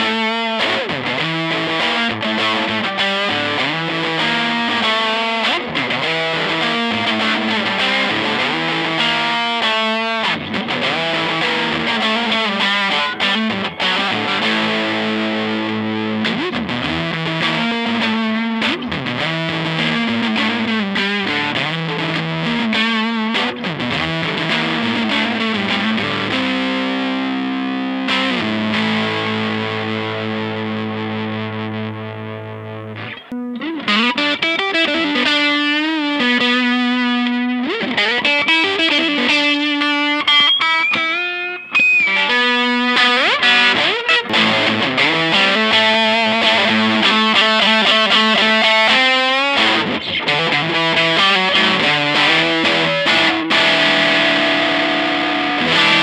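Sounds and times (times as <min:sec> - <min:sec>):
distorted electric guitar: 0:00.0 - 0:56.0.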